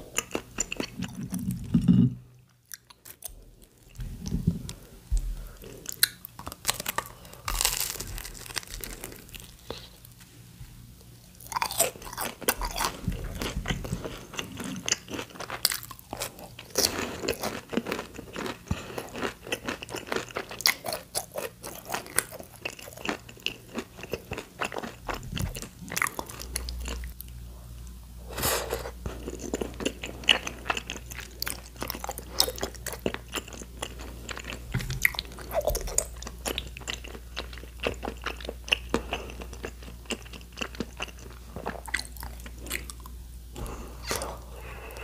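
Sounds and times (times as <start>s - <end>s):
crunchy chewing of fried food: 0.0s - 45.0s.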